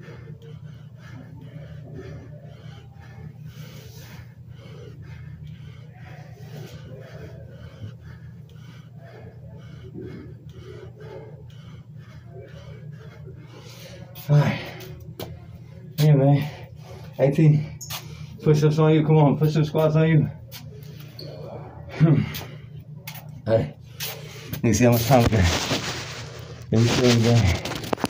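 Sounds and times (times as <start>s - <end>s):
man breathing: 0.0s - 18.7s, 19.8s - 26.7s
steady low hum: 0.0s - 28.0s.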